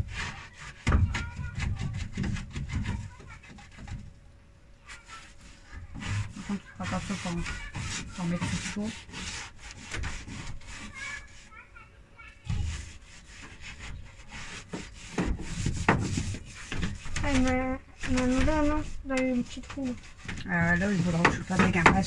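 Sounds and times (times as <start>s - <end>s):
paint roller rubbing over wood: 0.0s - 4.1s, 4.8s - 22.0s.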